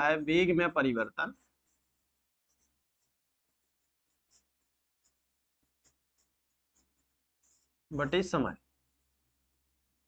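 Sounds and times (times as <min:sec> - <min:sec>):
chalk scratching on chalkboard: 0:01.2 - 0:10.0.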